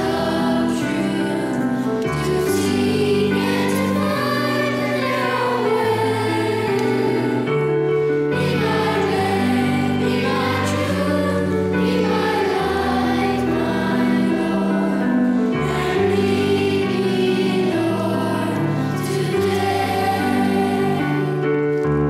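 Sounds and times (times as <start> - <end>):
children's choir singing a hymn: 0.0 - 22.0.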